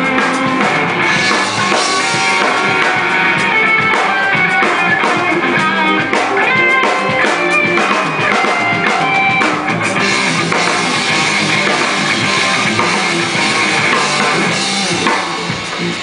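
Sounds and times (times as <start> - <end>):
bass guitar: 0.0 - 16.0
drum kit: 0.0 - 16.0
electric guitars: 0.0 - 16.0.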